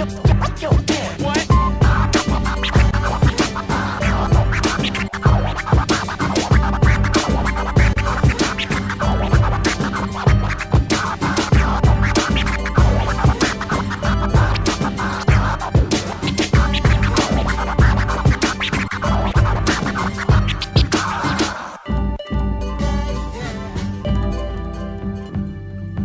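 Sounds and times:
turntable scratching: 0.0s - 21.8s
hip hop beat: 0.0s - 25.5s.

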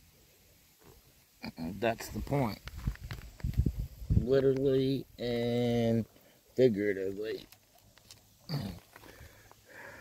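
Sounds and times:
man snorting: 8.5s - 10.0s.

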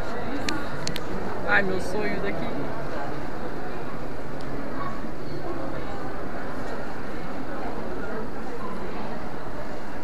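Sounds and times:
people talking indistinctly: 0.3s - 6.3s.

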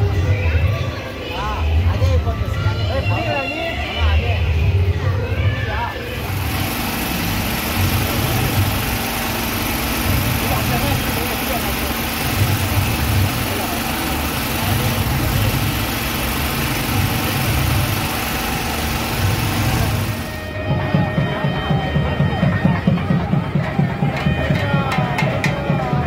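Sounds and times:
people talking: 0.0s - 26.0s
engine idling: 6.1s - 20.5s.

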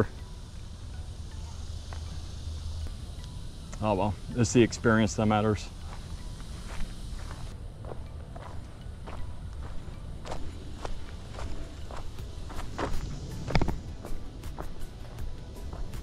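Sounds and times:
footsteps on wood-chip mulch: 5.2s - 16.0s.

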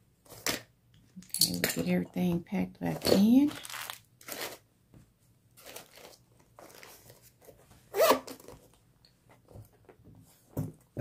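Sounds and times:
items rustling in handbag: 2.9s - 4.6s, 5.6s - 8.8s.

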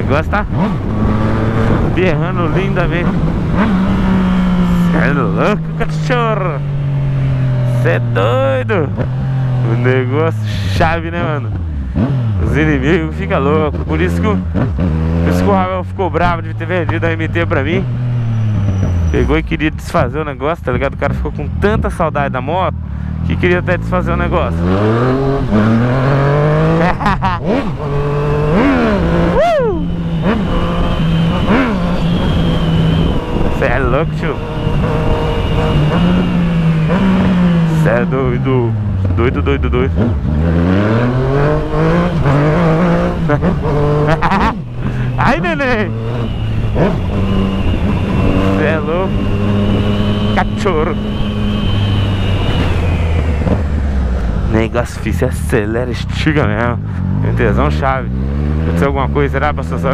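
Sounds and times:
motorcycle engine revving: 0.0s - 59.9s.

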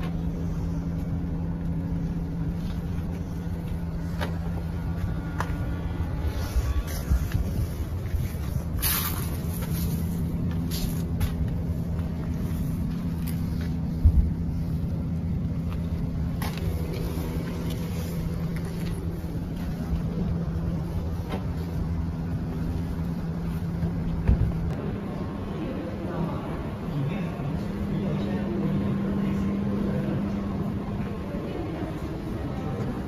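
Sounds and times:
vehicle engine idling: 0.0s - 33.0s.

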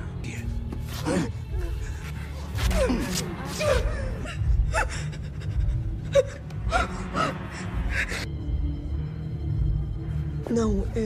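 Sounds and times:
bass-heavy background music: 0.0s - 11.0s.

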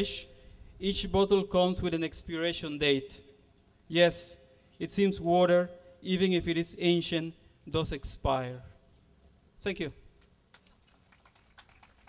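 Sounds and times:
faint scattered applause: 10.5s - 12.0s.

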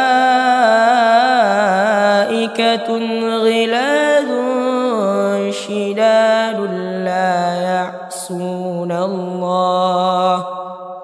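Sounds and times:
young man chanting recitation: 0.0s - 10.6s.

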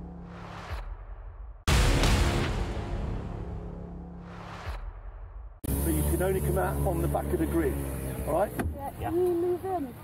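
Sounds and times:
loud whoosh hit: 0.3s - 5.6s.

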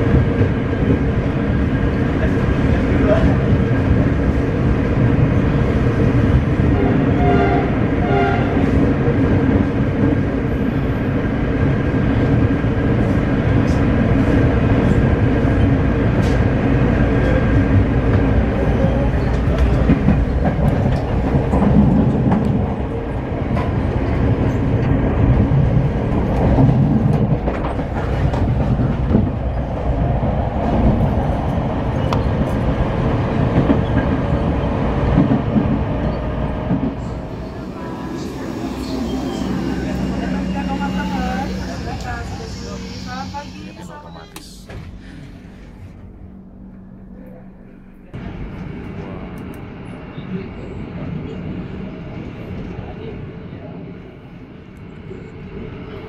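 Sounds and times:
low rumble of train wheels on rail: 0.0s - 56.0s.

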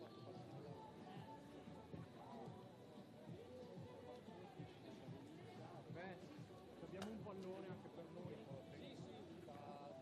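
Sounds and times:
faint voices talking: 0.0s - 10.0s.

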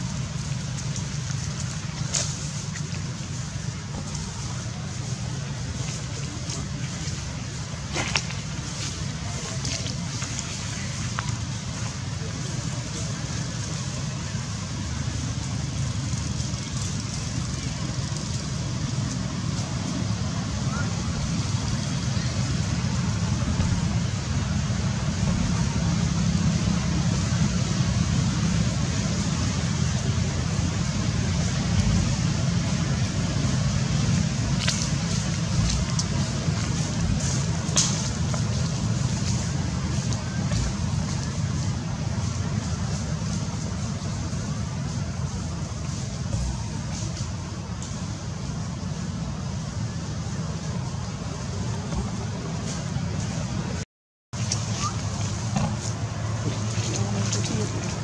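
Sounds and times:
low rumble and hiss: 0.0s - 53.8s, 54.4s - 58.0s.

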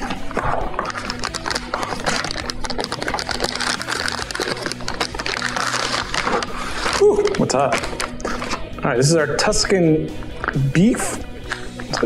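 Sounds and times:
plastic packaging crinkling: 0.0s - 8.6s
background music: 0.0s - 12.0s.

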